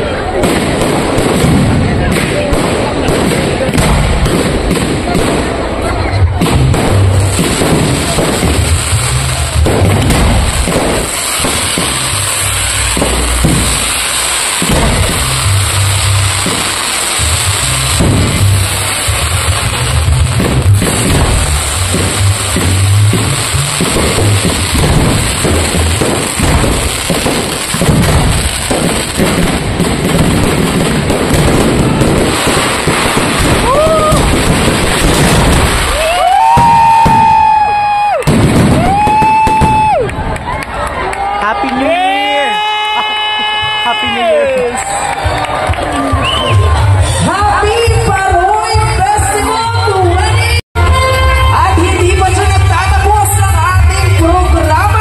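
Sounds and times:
fireworks bursts and crackle: 0:00.0 - 0:55.0
music playing: 0:05.7 - 0:31.4, 0:43.8 - 0:55.0.

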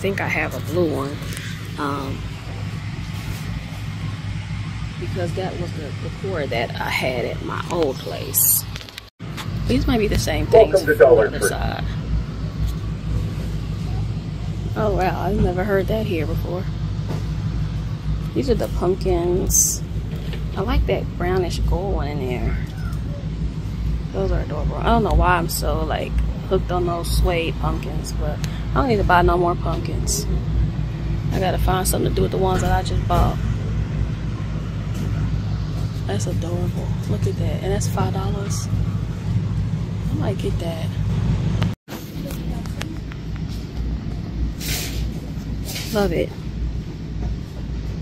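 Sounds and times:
steady low rumble: 0:00.0 - 0:48.0.

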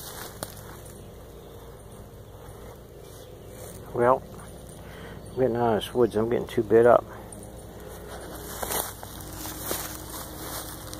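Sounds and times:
footsteps through dry leaves: 0:00.0 - 0:01.9, 0:07.4 - 0:10.9
rustling vegetation: 0:00.0 - 0:10.9.

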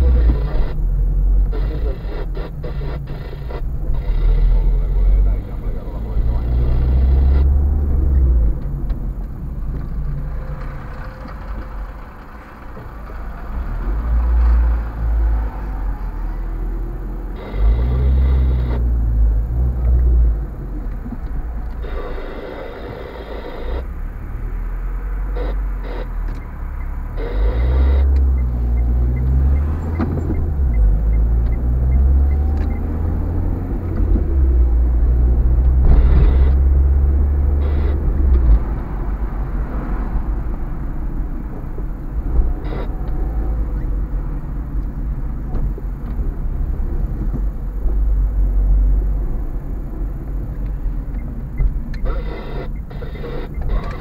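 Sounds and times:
engine and road rumble: 0:00.0 - 0:54.0.

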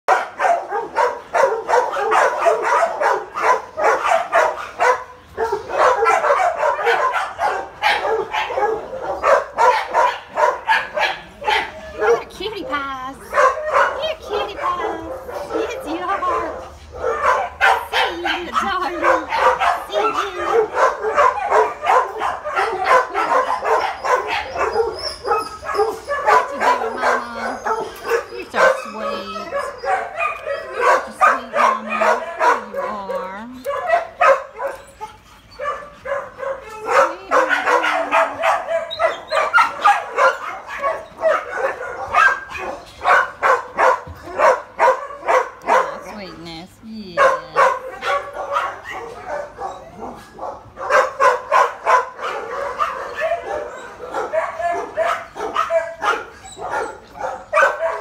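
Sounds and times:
many dogs barking: 0:00.1 - 0:58.0.

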